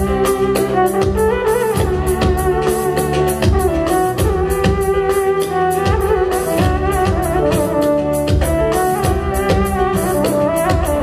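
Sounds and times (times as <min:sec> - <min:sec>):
hand drums beat: 0:00.0 - 0:11.0
synthesizer keyboard melody: 0:00.0 - 0:11.0.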